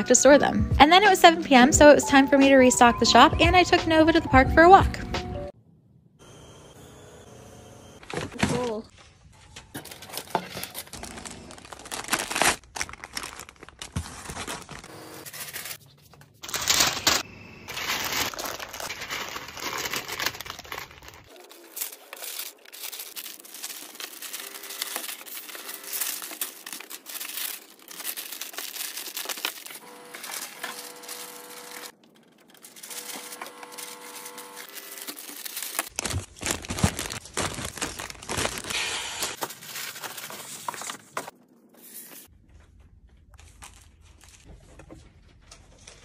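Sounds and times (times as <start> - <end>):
packaging crinkling and rustling: 9.4 - 41.3, 43.3 - 44.6.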